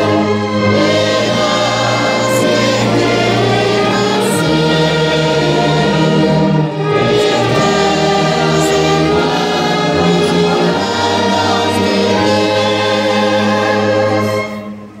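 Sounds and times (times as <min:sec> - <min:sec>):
congregation singing a hymn: 0:00.0 - 0:15.0
orchestra with brass: 0:00.0 - 0:15.0.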